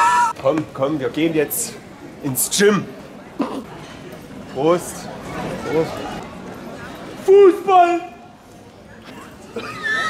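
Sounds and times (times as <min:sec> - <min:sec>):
person squealing cry: 0:00.0 - 0:00.3, 0:09.6 - 0:10.0
faint street background: 0:00.0 - 0:10.0.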